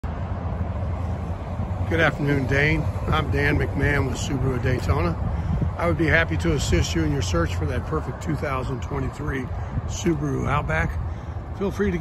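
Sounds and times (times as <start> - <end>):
steady low rumble: 0.0 - 12.0
man speaking: 1.9 - 12.0.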